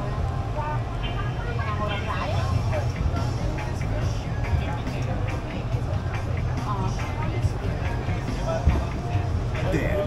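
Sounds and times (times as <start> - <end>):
bus engine idling: 0.0 - 10.0
people talking: 0.0 - 10.0.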